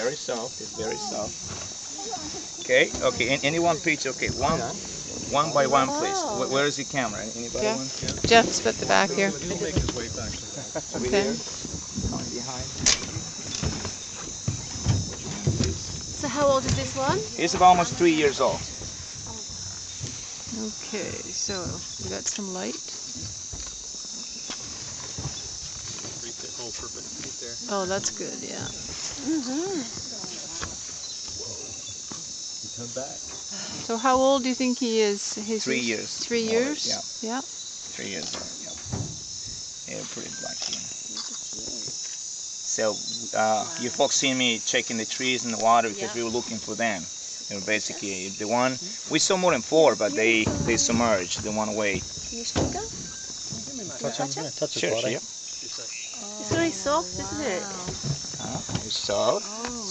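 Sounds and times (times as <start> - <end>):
faint voices: 0.0 - 13.4, 45.2 - 52.9, 53.5 - 59.9
night insects chirping: 0.0 - 59.9
dull bumps and rustles: 7.5 - 22.4, 23.0 - 32.4, 49.8 - 53.9, 56.5 - 59.4.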